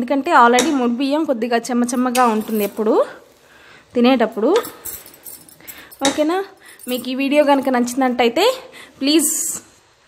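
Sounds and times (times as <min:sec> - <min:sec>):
woman speaking: 0:00.0 - 0:03.3, 0:04.0 - 0:04.8, 0:06.0 - 0:09.7.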